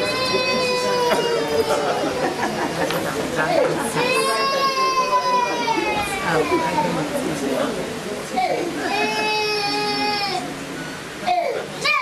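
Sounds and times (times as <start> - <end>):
crowd chatter in a hall: 0.0 - 12.0
child crying out high note: 11.3 - 12.0.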